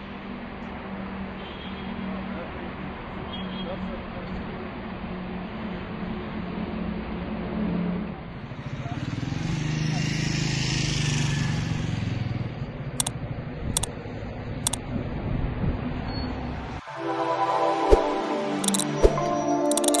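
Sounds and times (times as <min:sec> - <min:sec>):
road traffic: 0:00.0 - 0:20.0
vehicle passing: 0:07.6 - 0:13.9
mouse clicks: 0:18.6 - 0:20.0.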